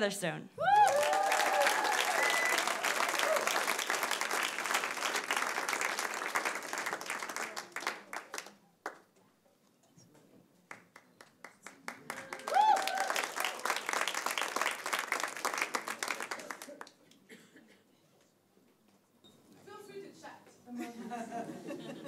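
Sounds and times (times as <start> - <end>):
people cheering: 0.6 - 8.2, 12.0 - 16.7
audience applauding: 0.6 - 9.1, 10.7 - 17.0.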